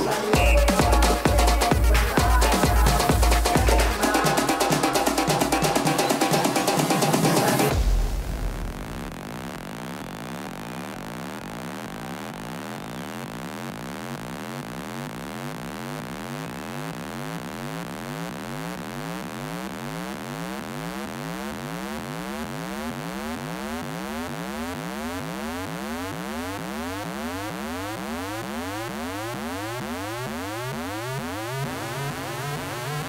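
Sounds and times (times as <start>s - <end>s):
electronic dance music: 0.0s - 33.0s
synthesizer riser sweeps: 26.9s - 33.0s.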